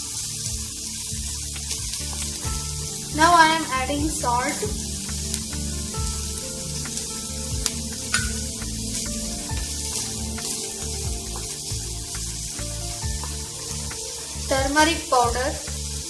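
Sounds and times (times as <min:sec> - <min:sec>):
background music: 0:00.0 - 0:16.0
onions sizzling in oil: 0:00.0 - 0:16.0.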